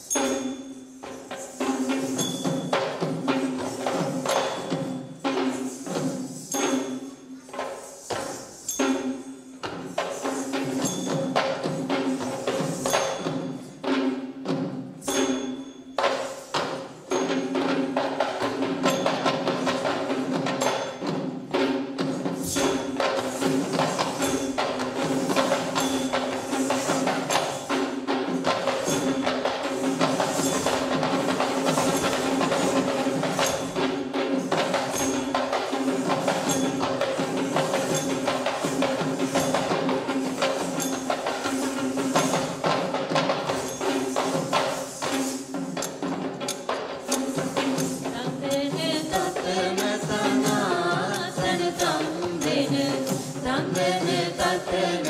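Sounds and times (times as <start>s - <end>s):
rapid hand-drumming: 1.0s - 55.0s.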